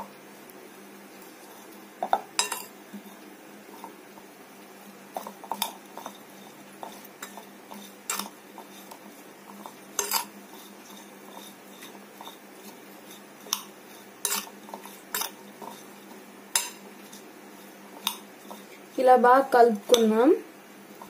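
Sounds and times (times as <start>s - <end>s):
spoon tossing vegetables in bowl: 1.2s - 20.2s
metal spoon clinking against bowl: 2.4s - 2.7s, 10.0s - 10.3s, 16.5s - 16.8s.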